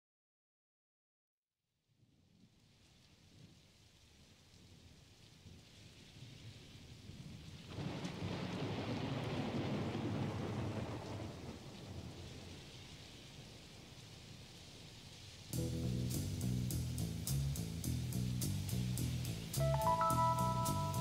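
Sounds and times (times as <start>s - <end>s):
rain falling: 2.4s - 21.0s
thunder rolling: 7.7s - 12.5s.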